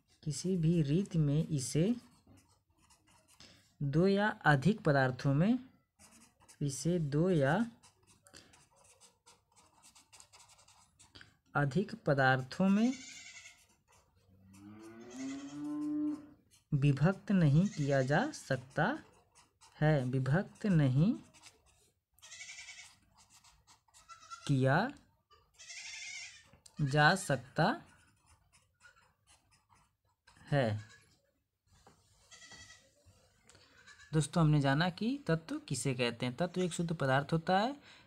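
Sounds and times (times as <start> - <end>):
faint high-pitched animal call: 15.0 - 16.3.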